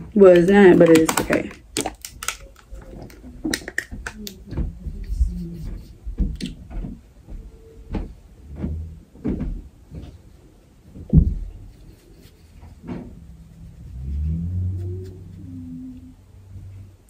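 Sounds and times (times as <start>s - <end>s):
handling knocks and bumps: 0.0s - 13.5s
low hum: 11.5s - 17.0s.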